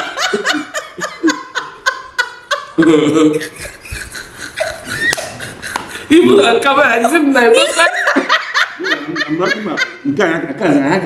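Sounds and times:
women laughing: 0:00.0 - 0:10.1.

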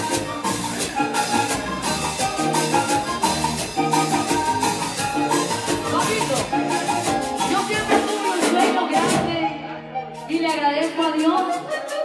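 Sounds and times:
hand drums and percussion: 0:00.0 - 0:09.5, 0:10.2 - 0:12.0
accordion: 0:00.0 - 0:12.0.

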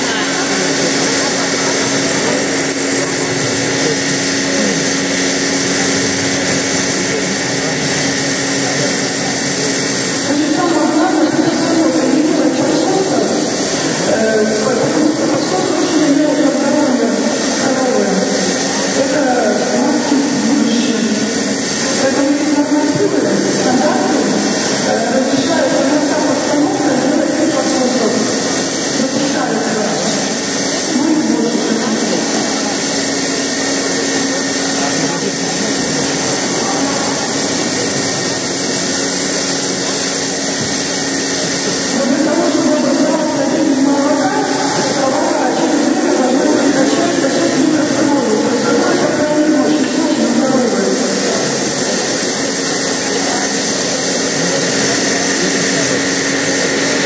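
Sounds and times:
milking machine humming: 0:00.0 - 0:57.0
voices talking: 0:00.0 - 0:57.0.

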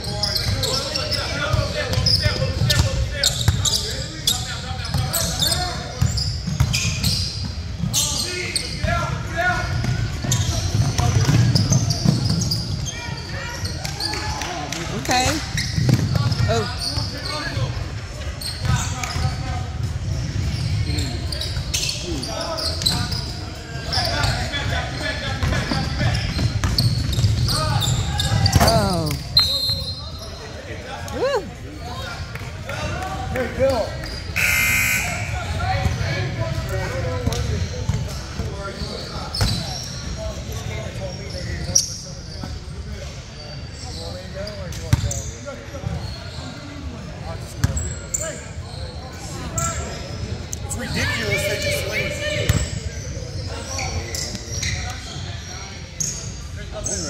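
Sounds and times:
sneakers squeaking: 0:00.0 - 0:14.4, 0:15.0 - 0:32.3, 0:33.6 - 0:57.0
people talking and calling out: 0:00.0 - 0:44.4, 0:45.1 - 0:57.0
referee whistle: 0:34.4 - 0:35.6.

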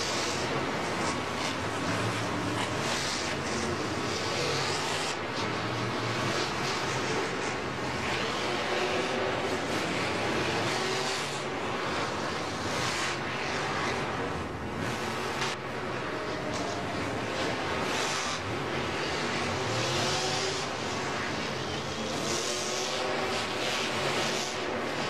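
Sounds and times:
monster truck engines running: 0:00.0 - 0:25.0.

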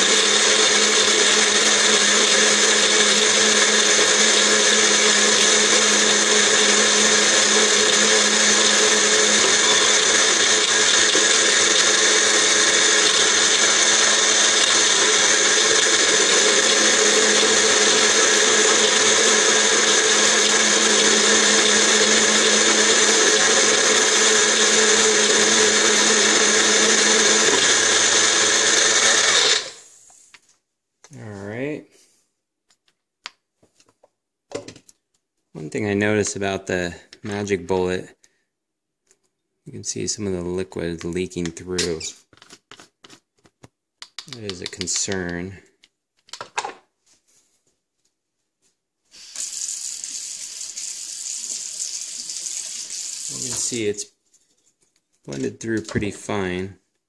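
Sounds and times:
blender motors running: 0:00.0 - 0:29.9, 0:49.1 - 0:54.0.

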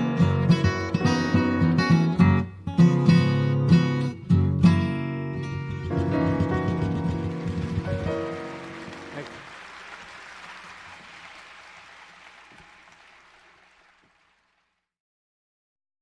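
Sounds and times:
blues guitar playing: 0:00.0 - 0:09.1.

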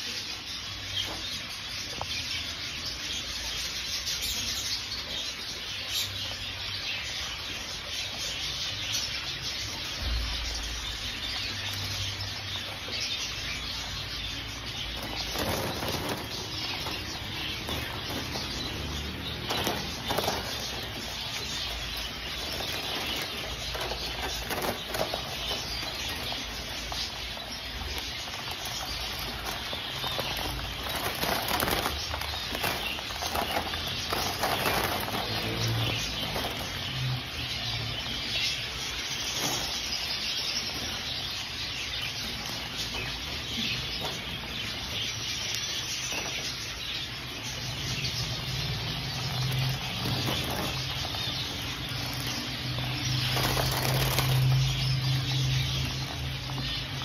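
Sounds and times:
doves flapping wings: 0:14.7 - 0:36.9, 0:48.5 - 0:57.0.

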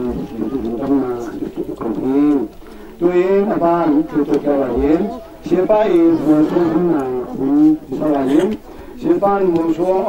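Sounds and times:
man reading aloud: 0:00.0 - 0:10.0.

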